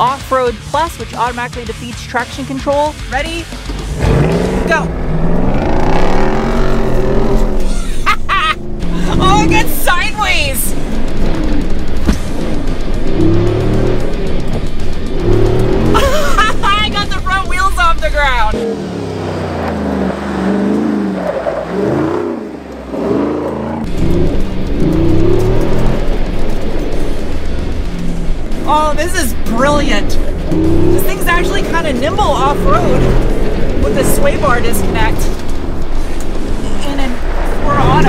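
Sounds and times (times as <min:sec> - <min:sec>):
engine revving hard: 0:03.8 - 0:08.0, 0:08.6 - 0:35.8, 0:36.4 - 0:38.0
woman's excited voice: 0:08.9 - 0:10.7.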